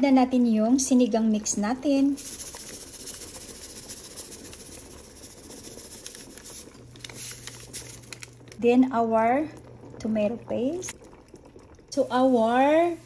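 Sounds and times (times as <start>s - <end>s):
broth boiling in a pot: 0.0s - 13.0s.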